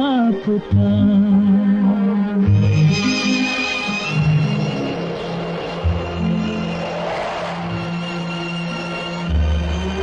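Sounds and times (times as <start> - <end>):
orchestral strings holding notes: 1.7 - 10.0.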